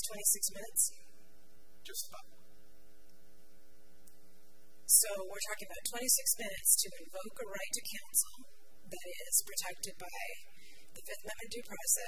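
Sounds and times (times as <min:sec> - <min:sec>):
steady electrical hum: 0:00.0 - 0:12.0
man speaking: 0:01.8 - 0:02.5.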